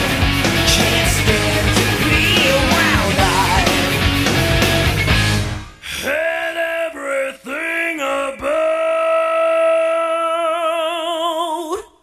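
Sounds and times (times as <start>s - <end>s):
person singing with vibrato: 0.5s - 4.0s, 5.8s - 12.0s.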